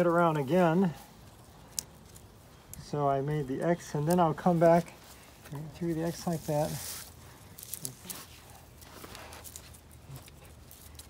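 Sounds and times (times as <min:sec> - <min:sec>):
rope rustling and scraping: 0:00.0 - 0:11.0.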